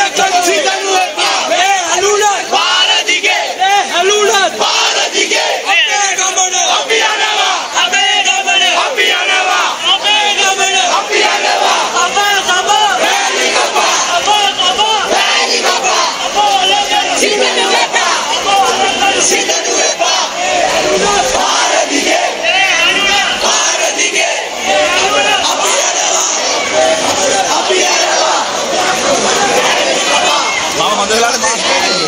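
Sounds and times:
crowd chanting in unison: 0.0s - 32.0s.

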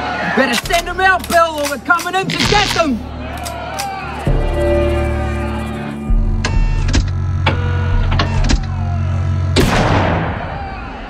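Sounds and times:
sharp clicks: 0.5s - 4.3s
low rumbling drone: 4.3s - 10.7s.

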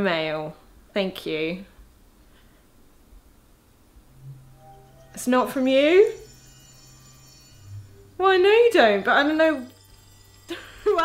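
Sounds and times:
woman speaking: 0.0s - 1.7s, 5.2s - 6.2s, 8.2s - 9.8s
faint low hum: 0.0s - 11.0s.

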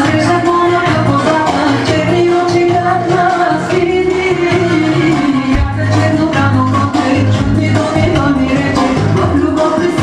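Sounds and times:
loud dance music: 0.0s - 10.0s.

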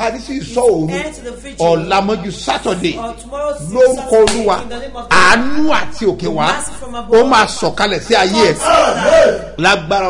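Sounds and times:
man shouting in prayer: 0.0s - 10.0s.

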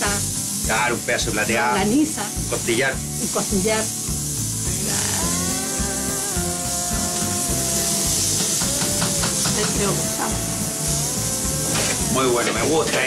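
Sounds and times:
pressure cooker venting steam: 0.0s - 13.0s.

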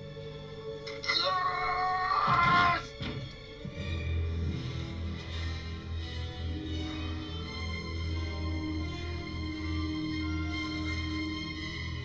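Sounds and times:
orchestral film music: 0.0s - 12.0s.

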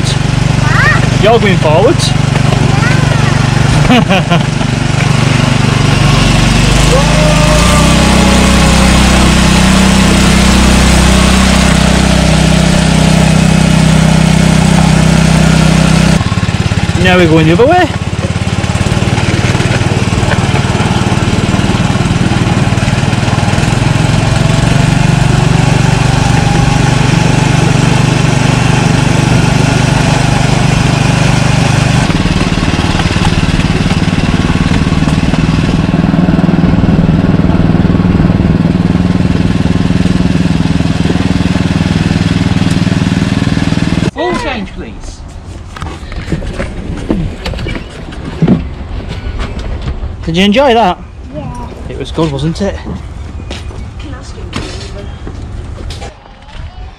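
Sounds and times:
small locomotive engine running: 0.0s - 44.1s.

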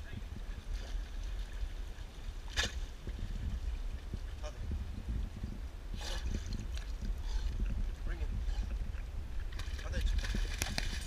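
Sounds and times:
steady low rumble: 0.0s - 11.0s
water splashing from swimming dog: 9.6s - 11.0s.

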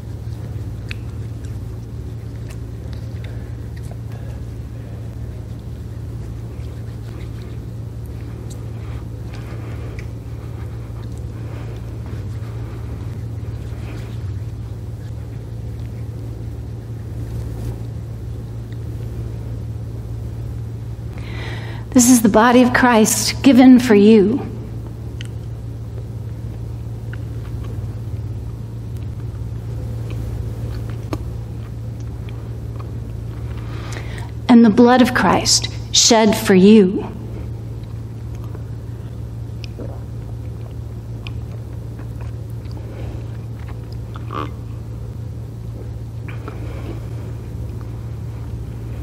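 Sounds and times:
low room hum: 0.0s - 49.0s.

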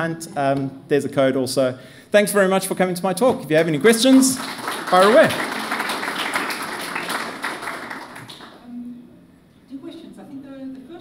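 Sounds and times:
audience applauding: 3.6s - 8.6s.

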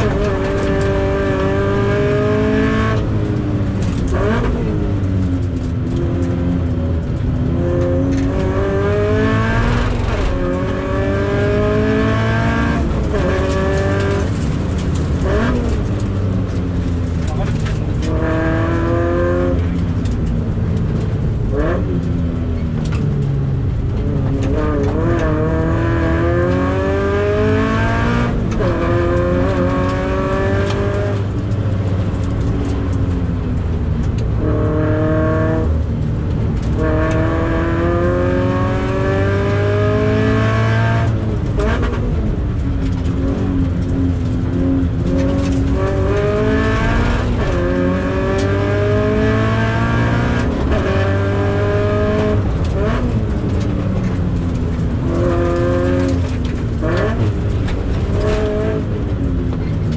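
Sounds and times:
car engine accelerating: 0.0s - 59.9s
road and tyre noise: 0.0s - 59.9s.

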